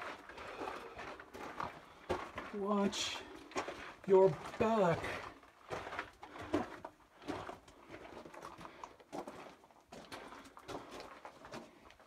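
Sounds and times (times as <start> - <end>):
footsteps crunching on gravel: 0.0 - 11.9.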